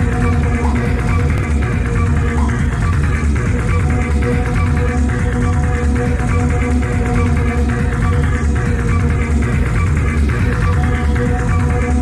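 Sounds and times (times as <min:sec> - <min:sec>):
techno music with driving beat: 0:00.0 - 0:12.0.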